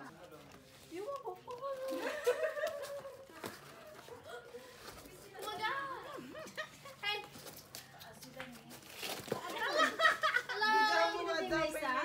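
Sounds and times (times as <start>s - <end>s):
people talking and laughing: 0.0s - 12.0s.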